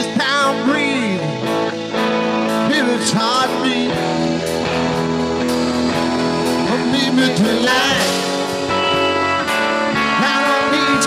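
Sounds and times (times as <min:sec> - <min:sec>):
electric guitar: 0:00.0 - 0:11.0
live rock band playing: 0:00.0 - 0:11.0.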